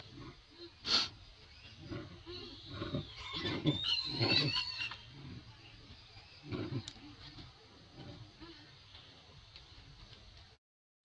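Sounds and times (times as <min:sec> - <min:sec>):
macaque high-pitched squeal: 0:02.3 - 0:05.0.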